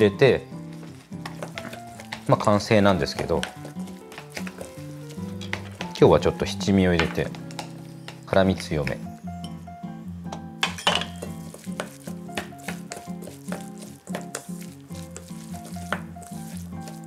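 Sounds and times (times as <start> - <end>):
background music: 0.0 - 17.0
chopsticks tapping metal bowl: 10.3 - 14.5
wet rustle of tossed cabbage: 11.2 - 17.0.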